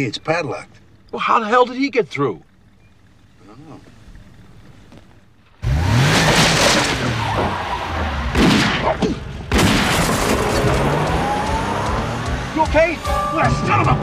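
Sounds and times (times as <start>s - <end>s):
tyres skidding: 0.0s - 14.0s
car engine starting and revving: 5.5s - 14.0s
dramatic film music: 10.8s - 14.0s.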